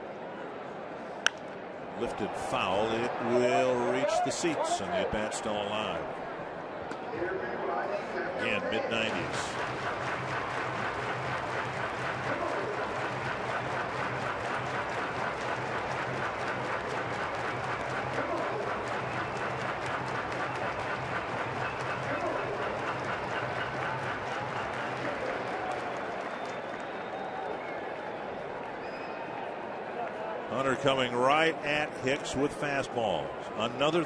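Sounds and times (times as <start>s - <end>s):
crowd clapping and cheering: 1.3s - 6.2s, 8.4s - 31.6s.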